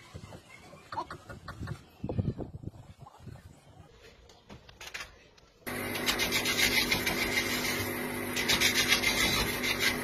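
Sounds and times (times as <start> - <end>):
rope rubbing and scraping: 5.9 - 10.0.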